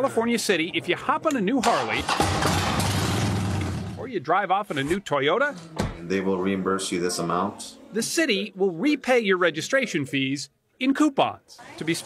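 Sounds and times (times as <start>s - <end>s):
motorcycle engine starting and running: 2.0s - 4.0s.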